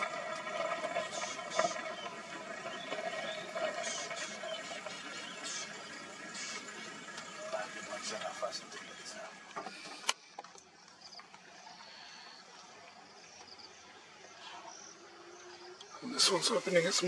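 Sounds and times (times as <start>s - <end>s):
faint low voices: 0.6s - 9.5s.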